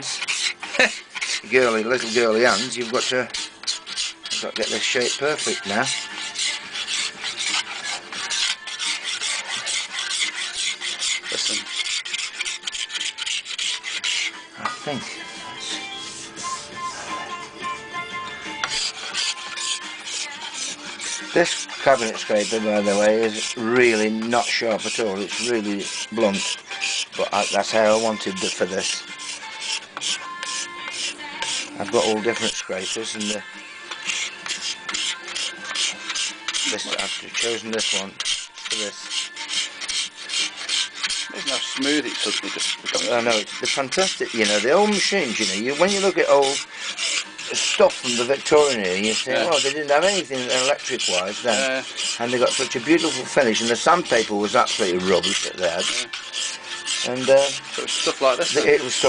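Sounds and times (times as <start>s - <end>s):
cabinet scraper rasping on wood: 0.0s - 17.3s, 18.6s - 59.0s.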